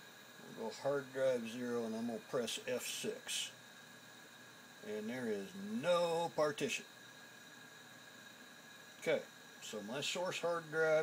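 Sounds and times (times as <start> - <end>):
faint steady hiss: 0.0 - 11.0
thin steady tones: 0.0 - 11.0.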